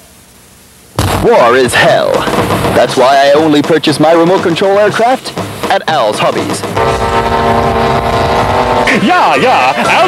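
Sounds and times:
steady engine drone: 1.9s - 10.0s.

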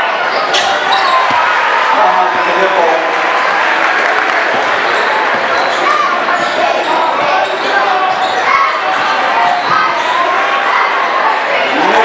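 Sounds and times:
chatter of people: 0.0s - 12.0s.

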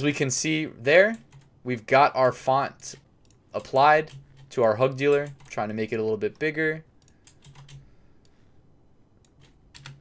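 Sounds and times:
faint keyboard and mouse clicks: 6.3s - 8.4s, 9.2s - 10.0s.

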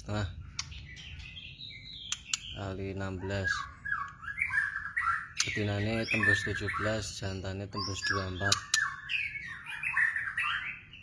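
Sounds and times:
man speaking: 0.0s - 0.4s, 2.6s - 3.8s, 5.4s - 8.7s
young birds chirping: 0.0s - 11.0s
sharp clicks: 0.5s - 0.8s, 2.1s - 2.5s.

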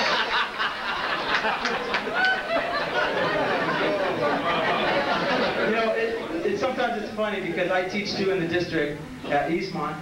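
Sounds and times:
roomful of people laughing: 0.0s - 6.6s.

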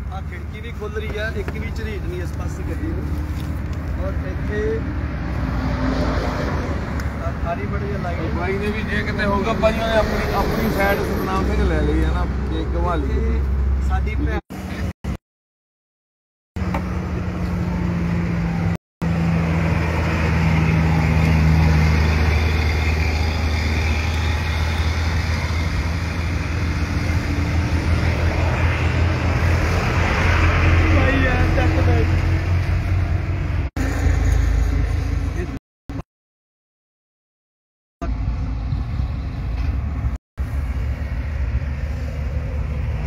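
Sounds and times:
vehicle engine humming: 0.0s - 14.8s, 16.6s - 35.6s, 38.0s - 43.0s.

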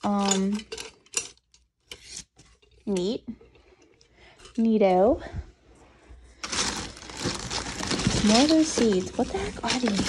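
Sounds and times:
tools clinking in metal canister: 0.0s - 2.0s.

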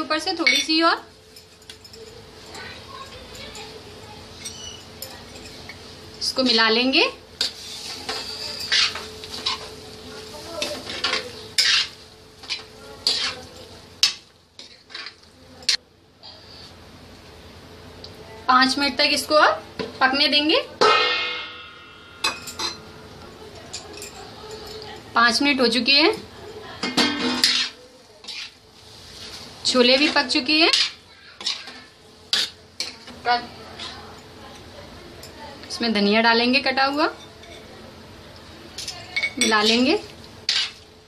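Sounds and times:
metal spoon scraping a pan: 4.3s - 5.9s, 7.4s - 9.8s, 10.6s - 15.8s, 26.9s - 34.1s, 38.8s - 40.8s.

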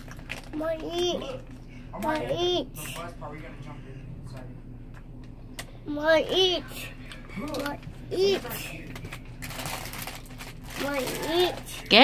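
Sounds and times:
small child's voice: 0.5s - 1.4s, 2.0s - 2.9s, 5.9s - 6.8s, 7.4s - 8.6s, 10.8s - 11.8s
rustling handling noise: 7.5s - 11.9s.

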